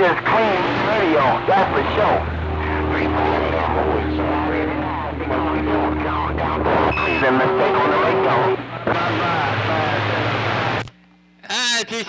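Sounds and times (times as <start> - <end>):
low hum: 0.0 - 11.4
garbled radio voices: 0.0 - 12.0
steady low whistles: 0.3 - 8.9
short high beep: 6.8 - 7.4.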